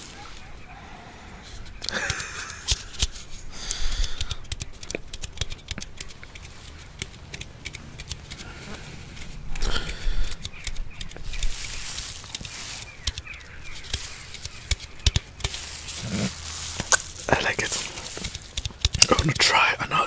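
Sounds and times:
wet mouth clicks: 1.8 - 11.5
person sipping and slurping: 15.9 - 18.1.

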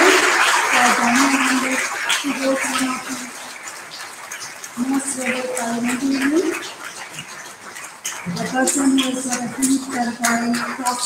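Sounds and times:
woman speaking: 0.0 - 3.3, 4.8 - 6.6, 8.3 - 11.0
audience applause: 0.0 - 11.0.

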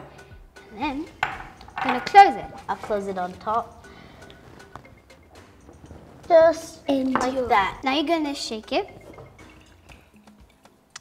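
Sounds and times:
quiet background music: 0.0 - 11.0
glass flask clicking and ticking: 9.0 - 11.0.

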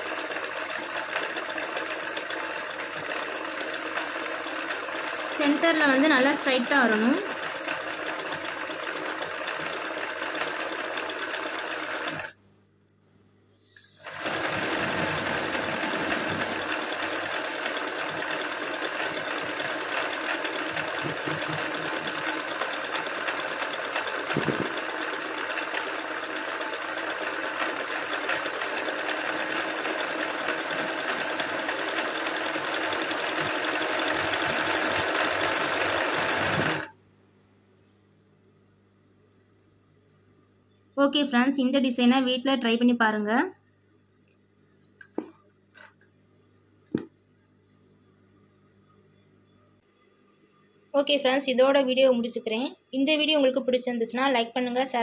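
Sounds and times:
sewing machine stitching: 0.0 - 12.4, 13.9 - 36.9.

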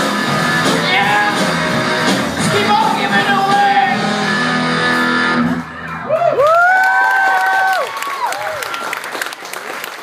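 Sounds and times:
rock band final chord: 0.0 - 5.9
audience whooping: 5.6 - 10.0.

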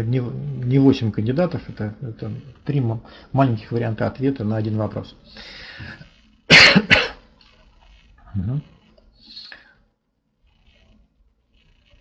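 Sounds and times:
faint breath: 5.3 - 6.2
man coughing: 6.5 - 7.2.

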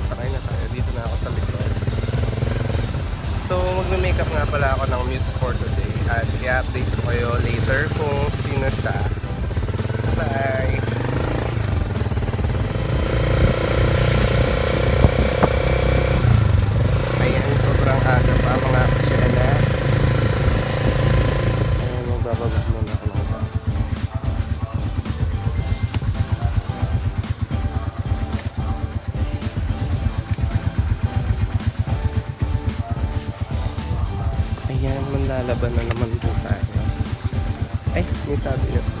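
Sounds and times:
motorcycle engine running: 0.0 - 39.0
music with pulsing beat: 0.0 - 39.0.

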